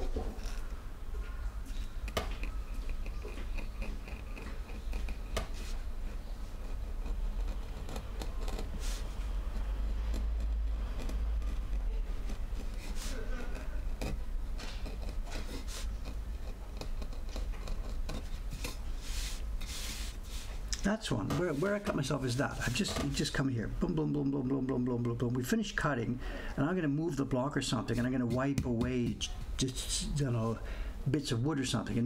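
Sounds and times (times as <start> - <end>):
steady low hum: 0.0 - 32.0
chisel cutting wood: 2.0 - 18.9.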